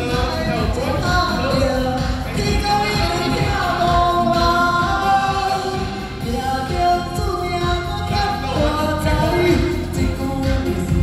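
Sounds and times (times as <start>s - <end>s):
backing track with steady beat: 0.0s - 11.0s
woman singing into a microphone: 0.0s - 11.0s.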